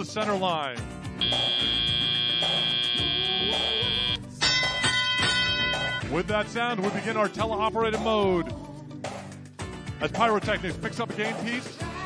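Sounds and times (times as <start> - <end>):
arena music with steady beat: 0.9 - 7.4
long steady buzzer: 1.2 - 4.2, 4.9 - 6.1
ringing field sound: 1.2 - 6.2.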